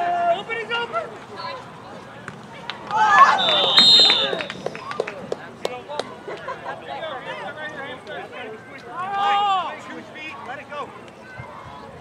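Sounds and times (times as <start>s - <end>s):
crowd shouting: 2.9s - 4.8s
referee's whistle: 3.3s - 4.6s.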